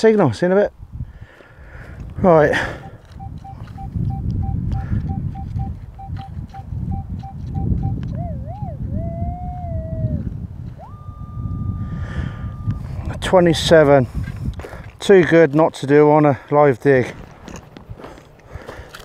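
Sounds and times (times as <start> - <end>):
wind rumble on microphone: 0.7 - 15.6, 17.0 - 19.0
metal detector beeps: 2.6 - 8.2, 12.4 - 13.9
metal detector wavering tone: 2.6 - 8.8, 10.8 - 13.9
metal detector rising high tone: 2.7 - 9.7, 10.7 - 13.9.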